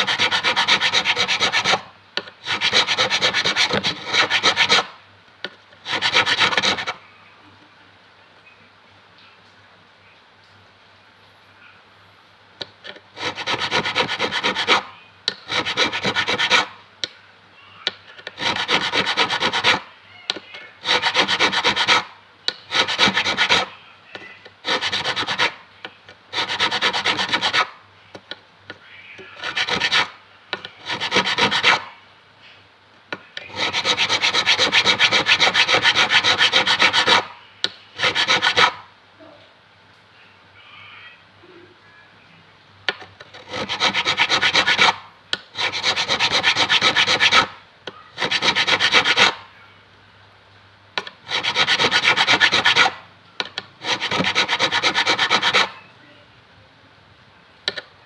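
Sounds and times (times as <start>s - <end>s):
file rasping across metal fret: 0.0s - 1.8s, 2.5s - 4.9s, 5.9s - 7.0s, 13.2s - 14.8s, 15.4s - 16.7s, 18.2s - 19.8s, 20.8s - 22.1s, 22.7s - 23.7s, 24.6s - 25.6s, 26.3s - 27.7s, 29.4s - 30.1s, 30.8s - 31.8s, 33.4s - 37.3s, 38.0s - 38.8s, 43.3s - 45.0s, 45.6s - 47.6s, 48.2s - 49.4s, 51.2s - 53.0s, 53.8s - 55.8s.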